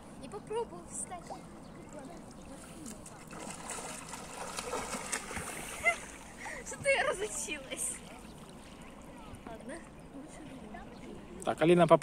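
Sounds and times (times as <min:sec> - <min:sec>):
river water splashing: 0:00.1 - 0:11.5.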